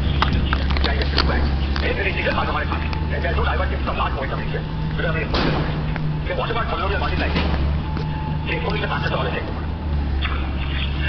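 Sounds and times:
indistinct voices: 0.0s - 11.0s
steady low rumble: 0.0s - 11.0s.

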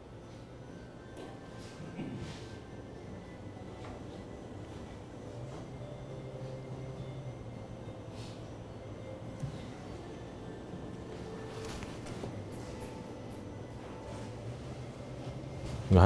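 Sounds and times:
low steady hum: 0.0s - 16.0s.

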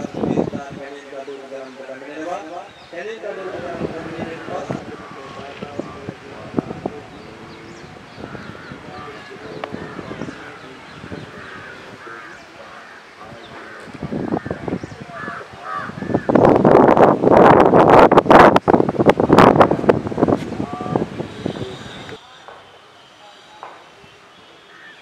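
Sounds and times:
outdoor voices: 0.0s - 25.0s
crows calling: 4.5s - 6.0s, 7.2s - 16.7s, 24.5s - 25.0s.

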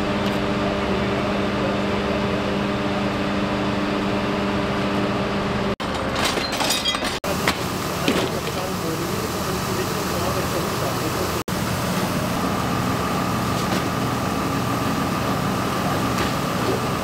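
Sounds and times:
fire engine engine running: 0.0s - 17.0s.

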